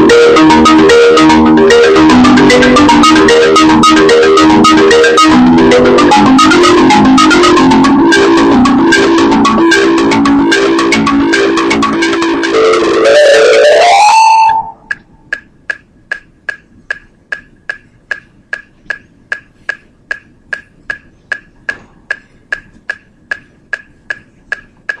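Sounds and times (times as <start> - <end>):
marimba played fast: 0.0 - 15.0
metronome ticking: 0.0 - 25.0.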